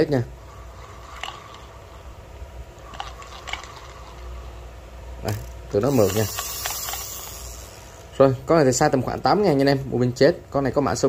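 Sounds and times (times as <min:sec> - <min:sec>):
fishing reel whirring: 0:00.0 - 0:08.0.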